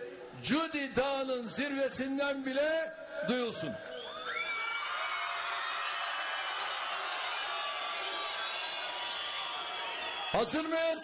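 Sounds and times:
crowd cheering and shouting: 3.2s - 11.0s.

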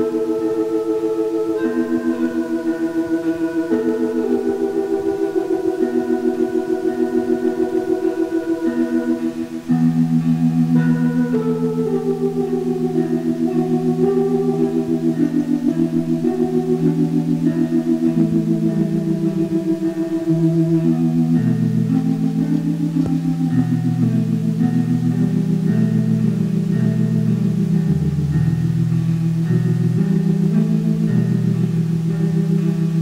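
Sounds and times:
pulsing synthesizer chords: 0.0s - 33.0s.

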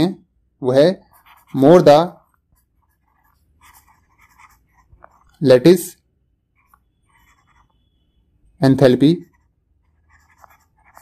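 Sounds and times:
person speaking: 0.0s - 7.6s, 8.5s - 11.0s.

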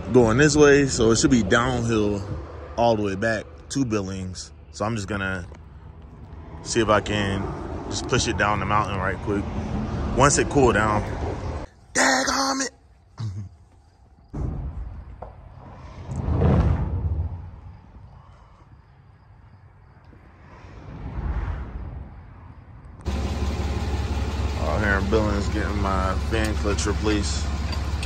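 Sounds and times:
vehicles passing on highway: 0.0s - 11.7s, 17.1s - 28.0s
diesel engine idling: 23.0s - 28.0s.

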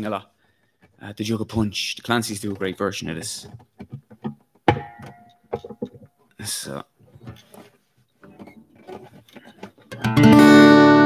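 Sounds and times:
acoustic guitar string plucked: 3.5s - 6.0s, 8.2s - 11.0s.

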